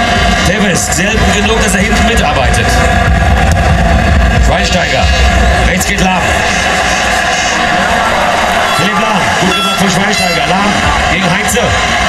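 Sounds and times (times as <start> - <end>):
crowd noise over loudspeaker: 0.0 - 12.0
vuvuzelas droning: 8.4 - 10.8.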